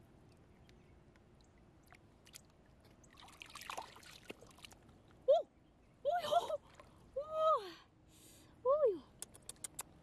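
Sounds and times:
hands splashing in shallow water: 1.8s - 4.8s.

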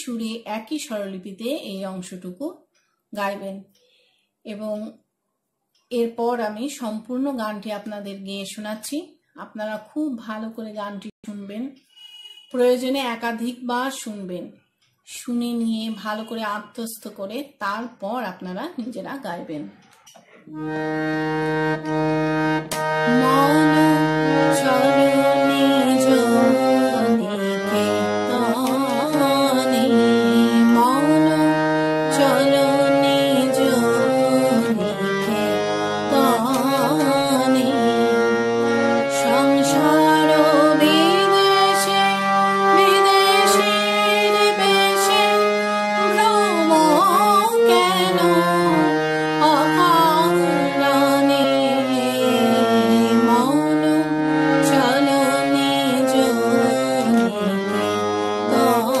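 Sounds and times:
harmonium held note: 20.5s - 59.0s
woman singing: 23.0s - 59.0s.

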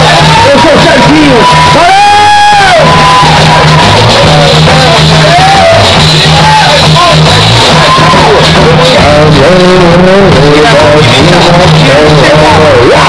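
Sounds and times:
electric bass line: 0.0s - 13.0s
live rock band playing: 0.0s - 13.0s
person singing: 7.9s - 13.0s.

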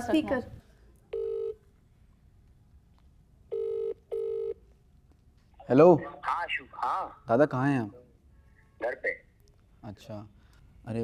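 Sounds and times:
phone ringback beeps: 1.1s - 1.6s, 3.5s - 4.6s.

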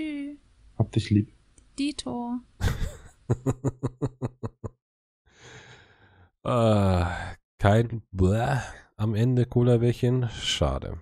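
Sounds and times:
man laughing: 2.6s - 4.8s.

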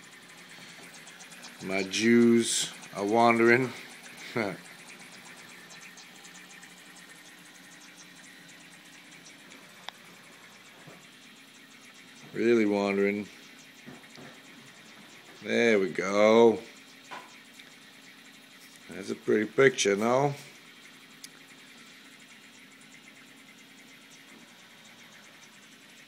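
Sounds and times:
running water hiss: 0.0s - 8.6s
water trickling: 0.0s - 19.2s.

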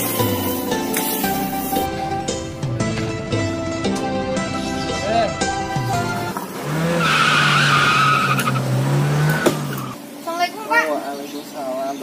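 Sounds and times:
motor scooter engine drone: 5.3s - 10.0s
brake squeal: 6.6s - 10.0s.

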